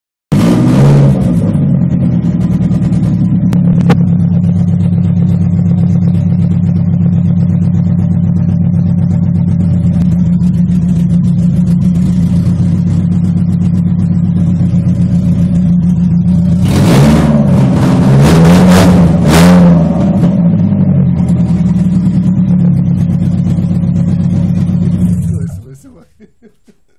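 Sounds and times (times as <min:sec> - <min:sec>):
engine revving: 0:00.3 - 0:25.8
car engine idling: 0:00.4 - 0:26.9.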